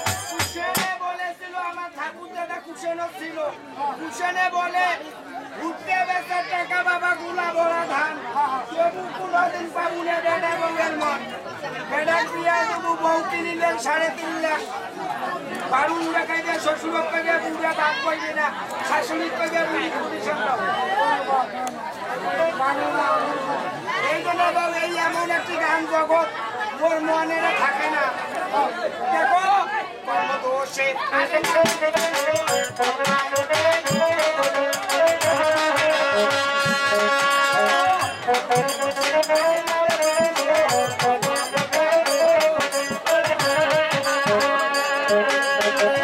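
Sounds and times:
crowd chatter: 0:00.0 - 0:46.0.

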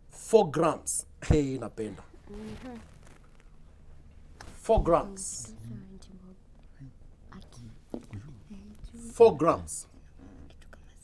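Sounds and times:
people whispering: 0:09.8 - 0:11.0.

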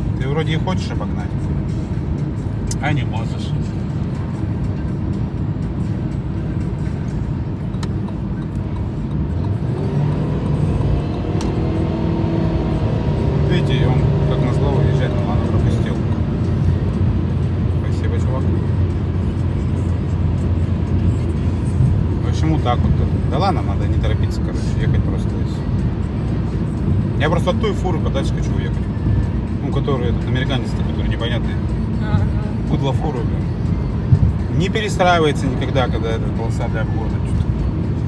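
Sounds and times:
car engine and tyre noise: 0:00.0 - 0:38.0.

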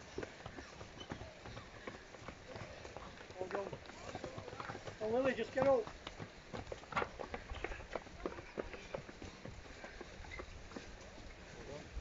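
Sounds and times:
footsteps on wooden boards: 0:00.0 - 0:11.6.

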